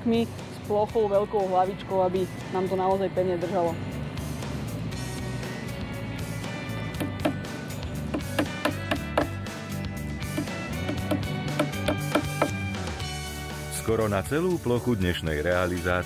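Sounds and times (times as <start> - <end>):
background music: 0.0 - 16.0
hammer tapping nails into wood: 7.0 - 7.4, 8.1 - 9.4, 10.3 - 12.6.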